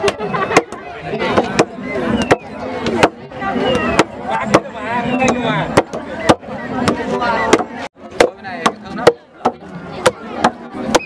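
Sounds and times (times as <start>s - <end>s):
voices: 0.0s - 11.0s
wooden mallets pounding rice: 0.0s - 11.0s.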